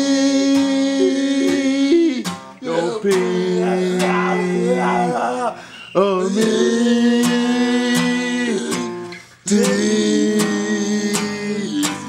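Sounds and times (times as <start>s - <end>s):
guitar strummed in chords: 0.0s - 12.0s
men singing long notes: 0.0s - 12.0s.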